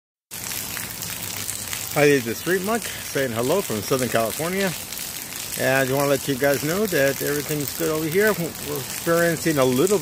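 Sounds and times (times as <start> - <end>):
light rain on an umbrella: 0.3 - 10.0.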